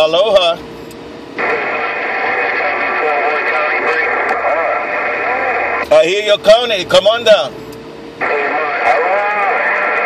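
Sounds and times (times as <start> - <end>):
radio static: 1.4 - 7.5, 8.2 - 10.0
voice over radio speaker: 1.4 - 7.5, 8.2 - 10.0.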